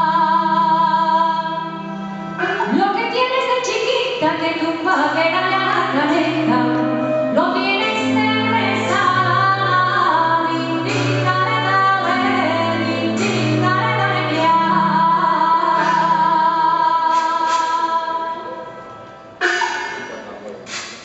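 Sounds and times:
woman singing: 0.0s - 1.9s, 2.5s - 18.7s.

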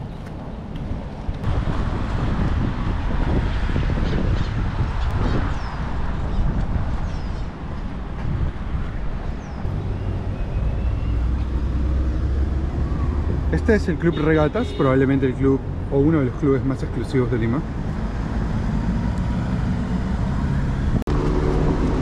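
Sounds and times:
wind buffeting microphone: 0.0s - 13.5s.

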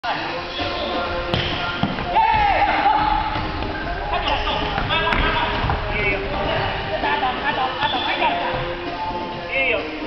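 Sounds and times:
players' voices in hall: 0.0s - 10.0s.

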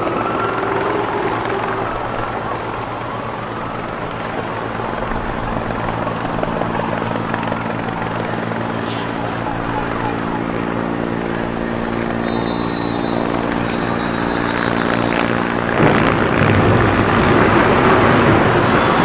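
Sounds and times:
helicopter drone: 0.0s - 19.0s.

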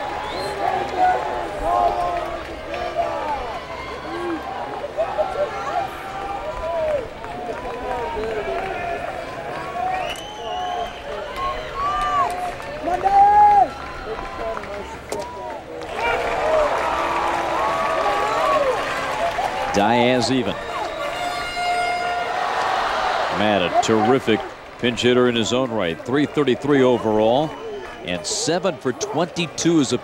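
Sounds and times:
crowd shouting: 0.0s - 30.0s.

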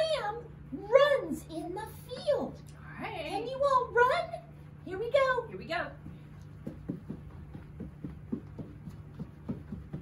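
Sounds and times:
steady low hum: 0.0s - 10.0s
footsteps running in place: 5.9s - 10.0s.

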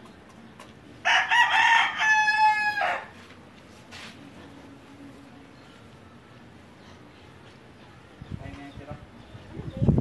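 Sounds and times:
rooster crowing: 1.0s - 3.2s.

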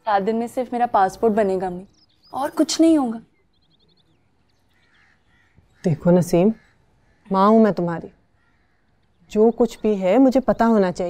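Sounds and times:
crows cawing faintly: 3.7s - 10.4s.

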